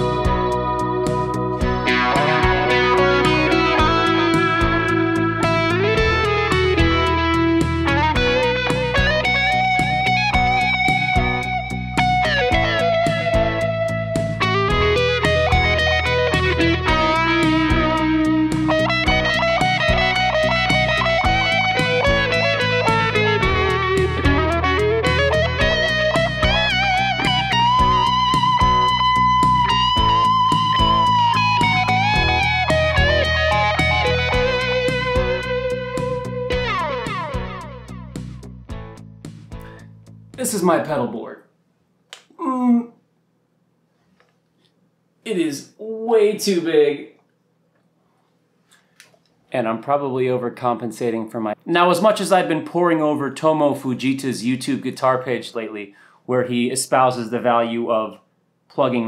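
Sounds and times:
overdriven electric guitar lead: 0.0 - 38.4.

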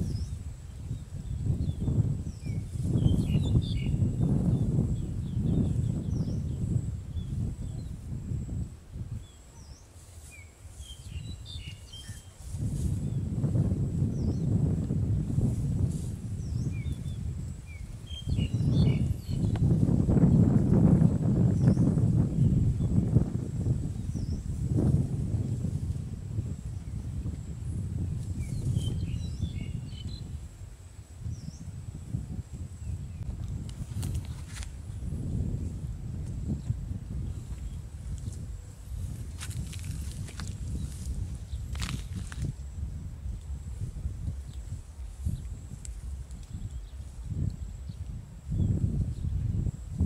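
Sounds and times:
small birds chirping: 0.0 - 8.1, 9.2 - 13.4, 15.2 - 20.5, 26.6 - 30.4, 44.4 - 49.7.

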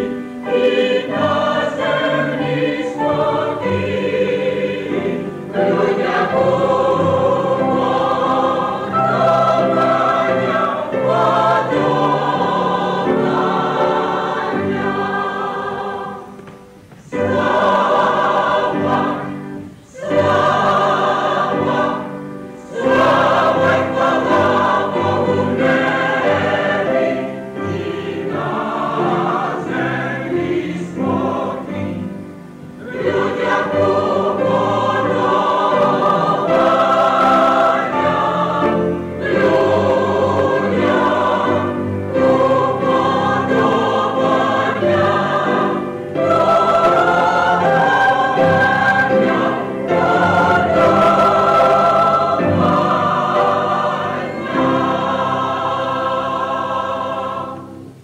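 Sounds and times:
mixed choir singing in harmony: 0.0 - 58.0.

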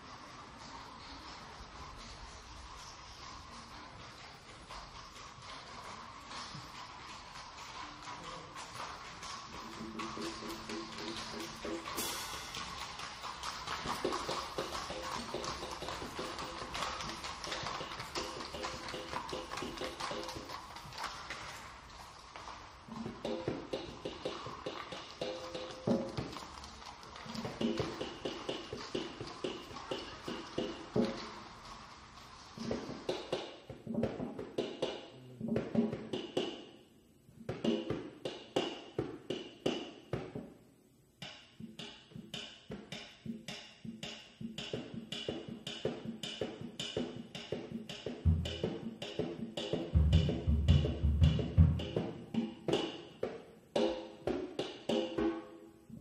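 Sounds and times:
drum kit: 9.6 - 20.6, 41.6 - 56.0.

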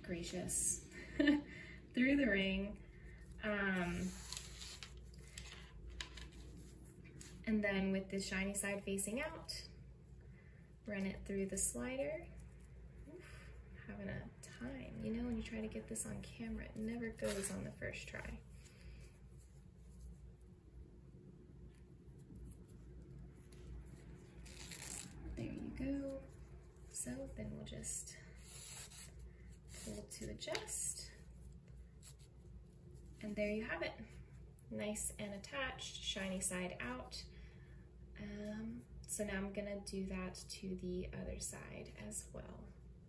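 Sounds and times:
low steady hum: 0.0 - 43.0
elastic strap rustling: 2.9 - 7.5, 15.0 - 20.8, 21.4 - 34.5.

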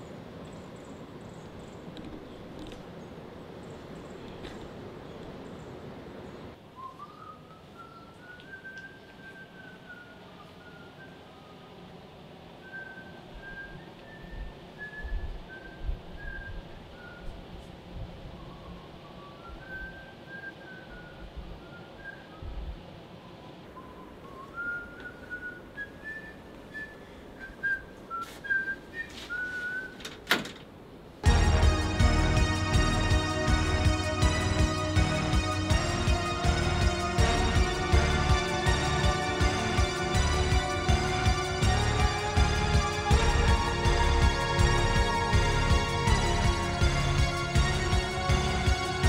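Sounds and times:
faint background hiss: 0.0 - 49.0
person whistling a slow tune: 6.8 - 11.6, 12.6 - 17.3, 19.0 - 22.6, 23.8 - 30.0.

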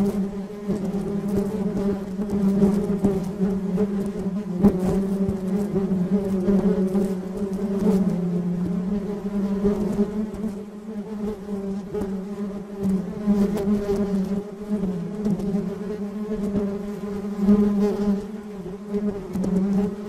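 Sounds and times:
honeybees buzzing: 0.0 - 20.0.

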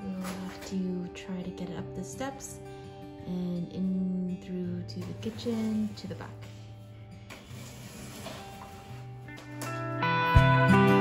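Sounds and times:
background music with steady beat: 9.2 - 11.0.

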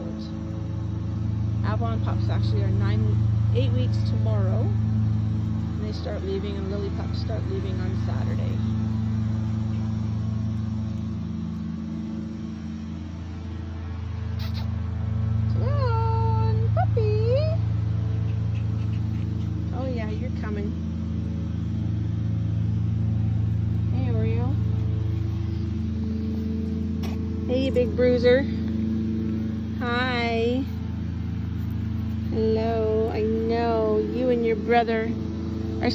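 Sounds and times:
lawn mower engine running: 0.0 - 35.9
puppy whining: 18.2 - 19.8.

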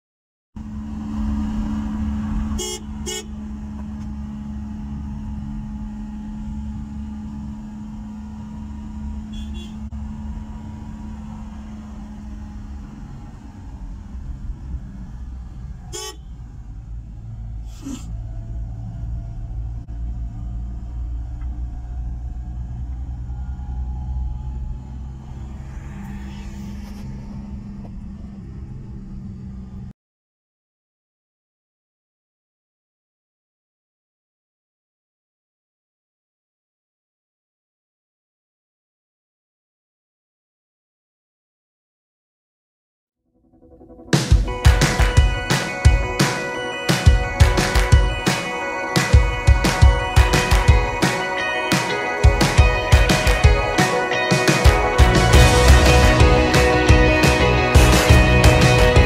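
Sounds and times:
car engine and road noise: 0.6 - 30.0, 43.6 - 59.0.

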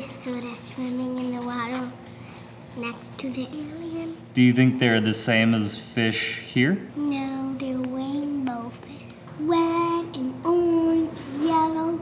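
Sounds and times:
girl singing wordless tune: 0.0 - 2.1, 2.8 - 4.3, 7.0 - 12.0.

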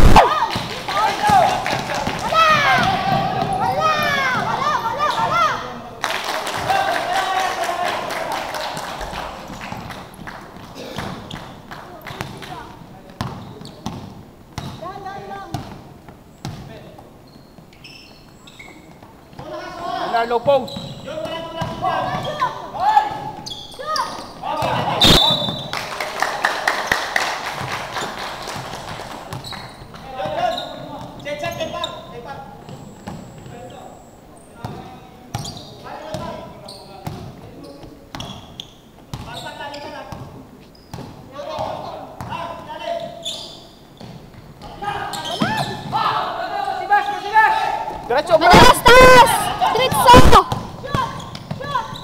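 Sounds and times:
players shouting: 0.0 - 5.8, 44.7 - 52.0
basketball bouncing on hardwood: 2.0 - 4.5.

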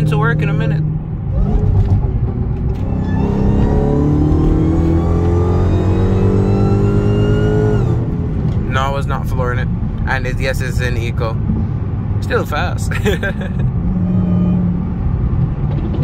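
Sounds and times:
car engine accelerating: 0.0 - 10.4
high whine climbing: 0.0 - 12.1.

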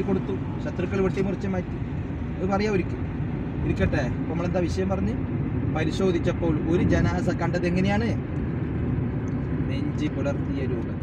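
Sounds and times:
car driving rumble: 0.0 - 11.0
people talking: 9.7 - 11.0.

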